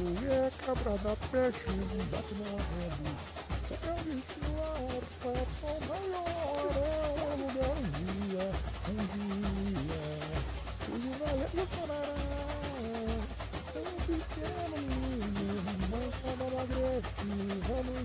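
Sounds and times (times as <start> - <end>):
deep bass drum pulses: 0.0 - 18.0
rattle of small percussion: 0.0 - 18.0
samba music: 0.0 - 18.0.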